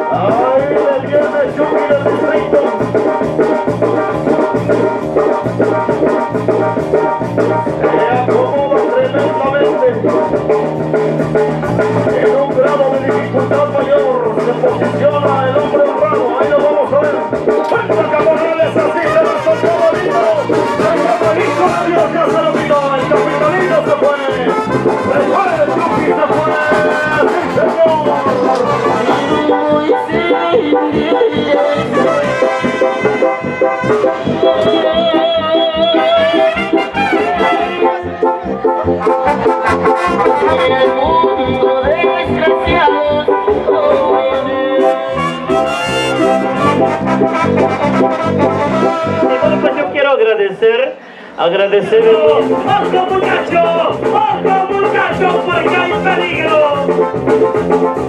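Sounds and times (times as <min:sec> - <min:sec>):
steady low beat: 0:00.0 - 0:49.9
brass band music: 0:00.0 - 0:50.5, 0:51.8 - 0:58.0.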